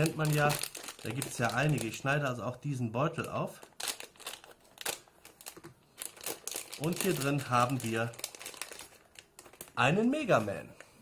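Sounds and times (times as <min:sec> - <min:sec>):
foil wrapper crinkling: 0:00.0 - 0:02.2, 0:03.2 - 0:10.6.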